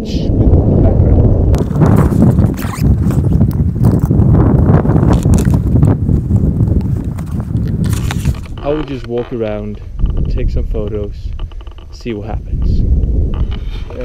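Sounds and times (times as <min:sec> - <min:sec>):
wind buffeting microphone: 0:00.0 - 0:14.0
camera gear knocks and clicks: 0:07.0 - 0:10.3, 0:11.3 - 0:12.1.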